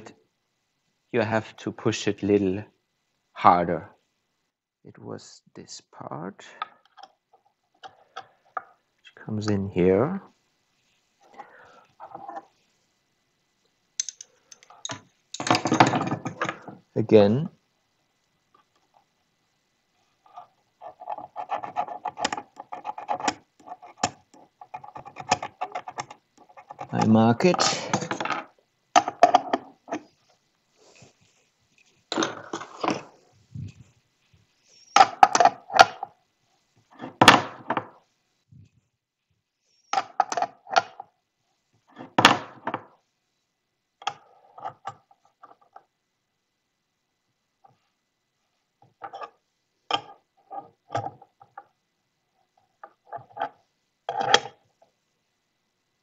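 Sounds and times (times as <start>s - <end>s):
hand tools clicking on metal fittings: 14.0s - 15.5s.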